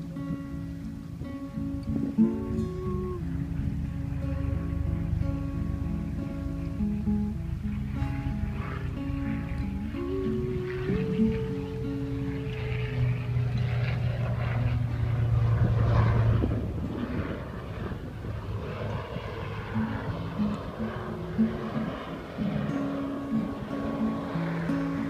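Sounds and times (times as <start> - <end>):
acoustic guitar playing: 0.0 - 25.0
low engine drone: 0.0 - 25.0
person singing: 1.8 - 4.8, 9.6 - 13.5.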